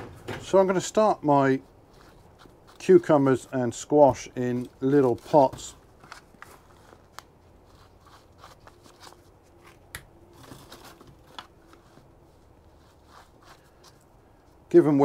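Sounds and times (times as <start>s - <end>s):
compost rustling: 0.0s - 15.0s.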